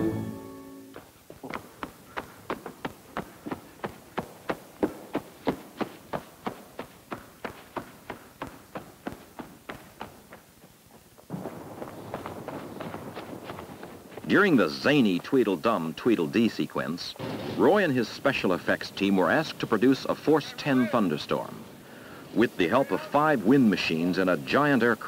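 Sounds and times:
quick footsteps: 0.9 - 24.0
steady rushing noise: 2.5 - 25.0.

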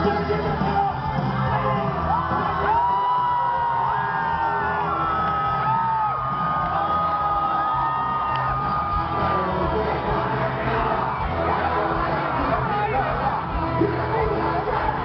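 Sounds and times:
crowd whooping and shouting: 0.0 - 15.0
punk rock band playing: 0.0 - 15.0.

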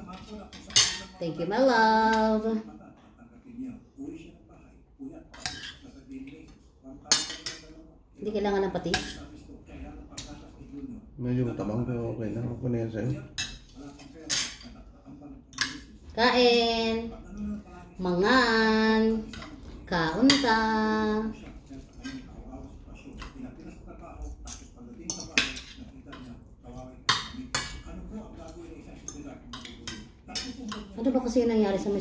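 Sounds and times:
cutlery clinking on a plate: 0.0 - 1.2, 5.3 - 6.4, 7.1 - 7.8, 8.9 - 9.4, 13.4 - 14.8, 15.5 - 16.0, 24.4 - 26.3, 27.1 - 31.0.

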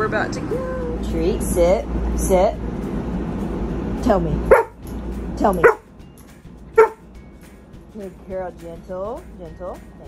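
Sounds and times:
dog barking: 4.5 - 4.8, 5.6 - 5.9, 6.8 - 7.0.

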